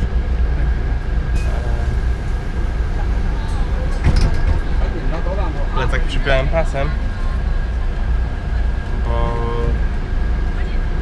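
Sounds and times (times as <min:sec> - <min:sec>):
bus engine rumble: 0:00.0 - 0:11.0
thin steady whine: 0:00.0 - 0:11.0.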